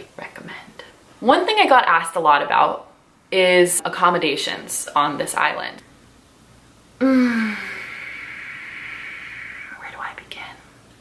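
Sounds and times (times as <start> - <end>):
woman sighing: 7.0 - 9.8
breathy mouth sounds: 7.0 - 10.7.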